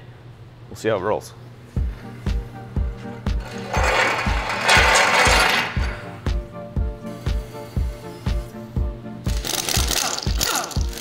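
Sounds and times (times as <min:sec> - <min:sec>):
background music with beat: 0:01.7 - 0:11.0
ratcheting mechanical noise: 0:03.3 - 0:06.2, 0:09.3 - 0:11.0.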